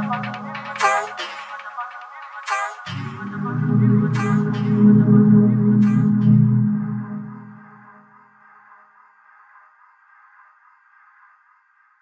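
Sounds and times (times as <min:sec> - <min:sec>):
sustained electronic synth tone: 0:00.0 - 0:01.0, 0:02.9 - 0:08.3
low bass: 0:02.9 - 0:08.0.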